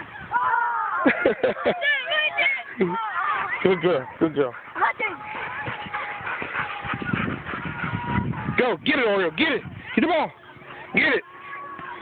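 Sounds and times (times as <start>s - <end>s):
children shouting: 0.0s - 4.1s, 4.9s - 8.8s, 9.9s - 12.0s.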